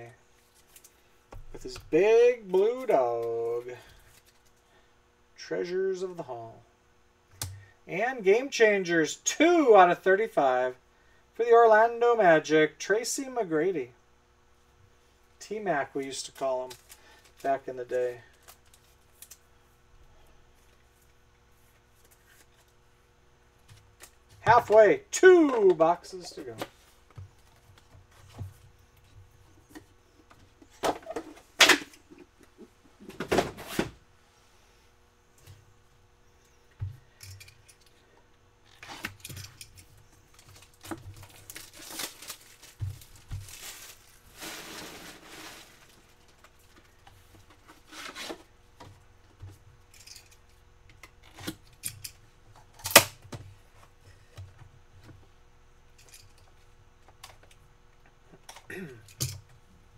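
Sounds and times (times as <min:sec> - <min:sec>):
packaging tearing: 0:40.6 - 0:44.8.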